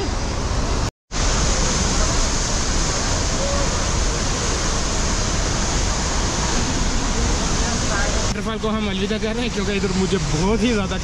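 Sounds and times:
waterfall roaring: 0.0s - 11.0s.

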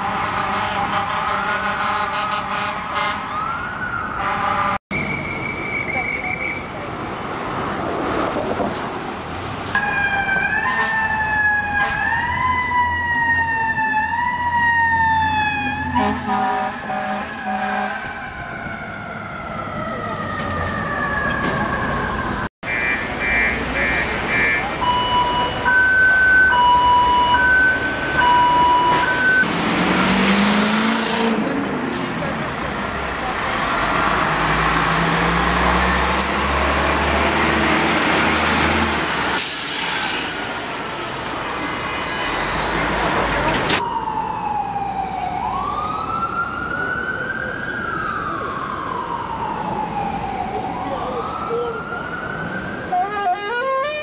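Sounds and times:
emergency vehicle siren wailing: 0.0s - 6.1s, 9.7s - 39.6s, 40.2s - 54.0s
street noise: 0.0s - 54.0s
heavy vehicle engine passing: 26.3s - 44.0s.

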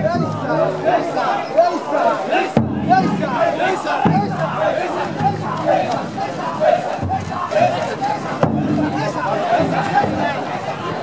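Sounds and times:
crowd of men shouting: 0.0s - 11.0s
big drum booming: 2.5s - 11.0s.

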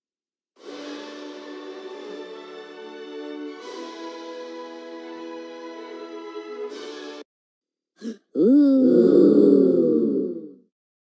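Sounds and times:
cartoon voices saying ooh: 8.0s - 10.6s.

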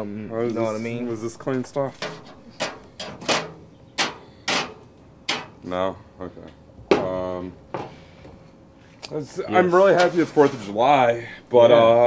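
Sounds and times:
brush scraping metal grill grate: 1.8s - 5.6s, 9.8s - 10.8s.

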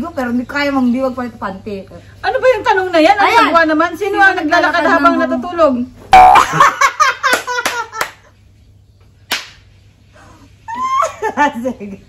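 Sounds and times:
sharp smacks: 9.3s - 9.7s
woman squealing: 10.7s - 11.4s.

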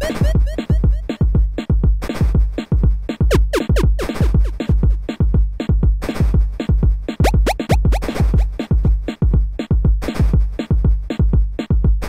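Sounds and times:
chiptune music: 0.0s - 1.5s, 3.3s - 4.8s, 7.2s - 8.5s
synth kick drums: 0.0s - 1.6s, 3.3s - 5.0s, 7.2s - 8.6s.

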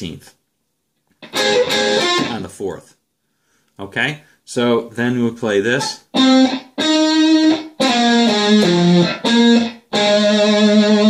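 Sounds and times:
electric guitar lead lick: 1.2s - 2.4s, 5.8s - 11.0s.

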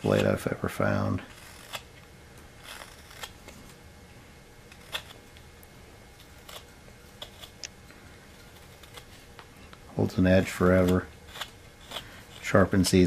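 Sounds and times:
knife slicing wood chips: 10.4s - 12.8s.

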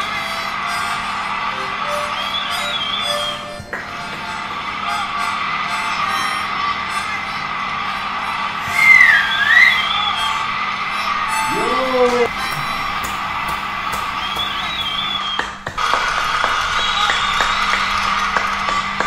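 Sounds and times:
background music: 0.0s - 6.5s, 8.6s - 15.4s
loud finger whistle: 0.0s - 19.0s
rising whoop: 8.6s - 13.3s.

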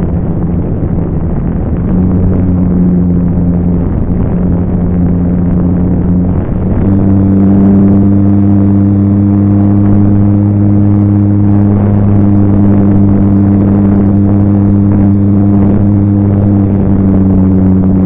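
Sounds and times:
model airplane engine droning: 0.0s - 18.0s.

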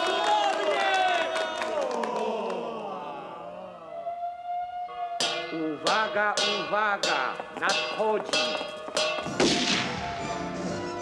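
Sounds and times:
siren wailing: 2.7s - 5.8s.

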